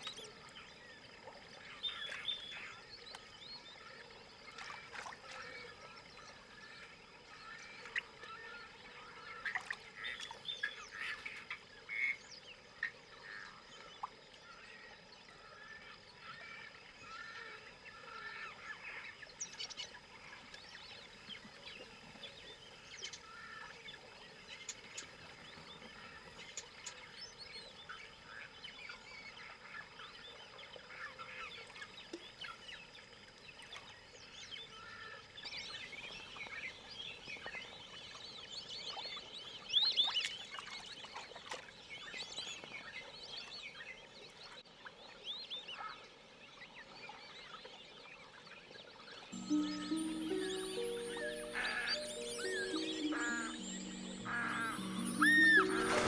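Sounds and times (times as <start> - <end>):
birds chirping and whistling: 49.4 - 56.0.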